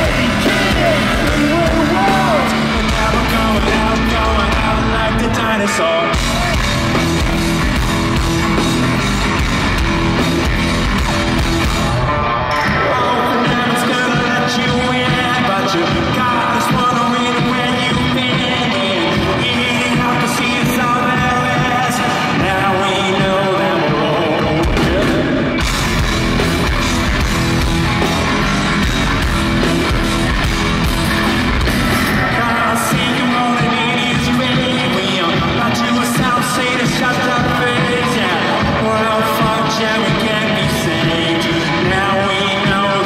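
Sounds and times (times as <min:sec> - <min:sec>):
lead vocals singing: 0:00.0 - 0:07.0, 0:12.6 - 0:25.7, 0:31.7 - 0:43.0
live rock band playing: 0:00.0 - 0:43.0.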